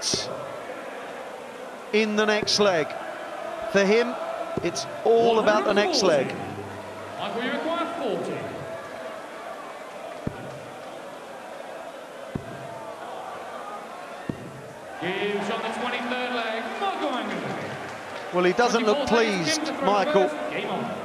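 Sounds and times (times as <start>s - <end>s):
arena crowd murmur: 0.0s - 21.0s.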